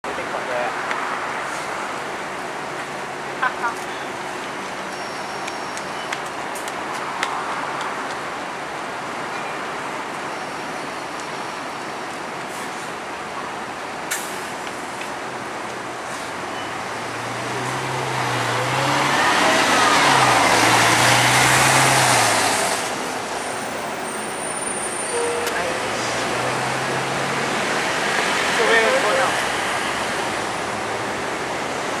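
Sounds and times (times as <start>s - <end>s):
bus station background noise: 0.0s - 32.0s
bus driving past: 14.1s - 32.0s
voices: 17.4s - 21.9s.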